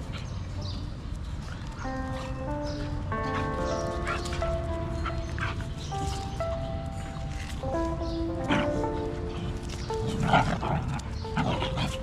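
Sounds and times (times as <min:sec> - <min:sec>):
background music with sustained notes: 0:00.0 - 0:12.0
dogs yipping and whimpering: 0:01.5 - 0:07.6, 0:08.2 - 0:12.0.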